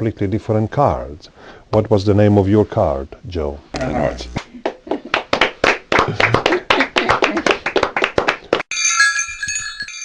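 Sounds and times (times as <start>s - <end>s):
hand clapping: 4.6s - 8.7s
shimmering bell-like chime: 8.7s - 10.0s.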